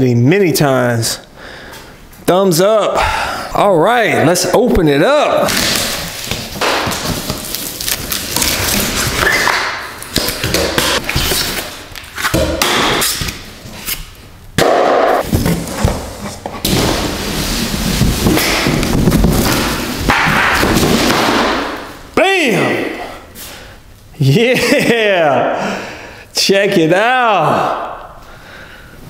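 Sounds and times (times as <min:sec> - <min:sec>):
cardboard thuds: 0:14.6 - 0:21.8.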